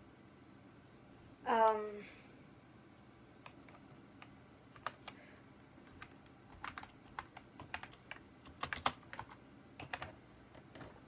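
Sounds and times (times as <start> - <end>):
typing on computer keyboard: 3.4 - 5.2, 5.8 - 11.0.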